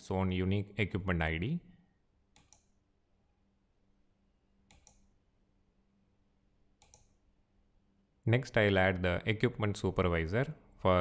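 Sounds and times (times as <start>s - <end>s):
computer mouse clicks: 2.3s - 2.8s, 4.6s - 5.2s, 6.8s - 7.2s.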